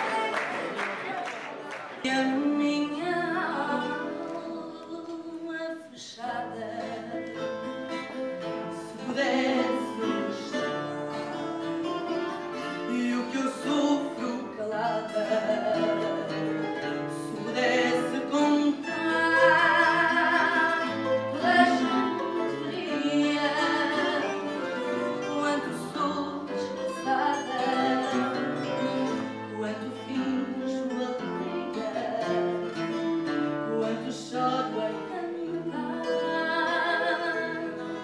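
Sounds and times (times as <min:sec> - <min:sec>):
plucked guitars: 0:00.0 - 0:38.0
woman singing: 0:02.0 - 0:11.4, 0:12.6 - 0:38.0.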